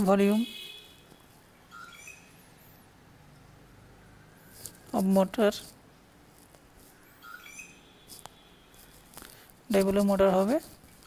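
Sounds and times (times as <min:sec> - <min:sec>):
high squeaky chirp: 0:01.7 - 0:02.8, 0:06.9 - 0:09.1.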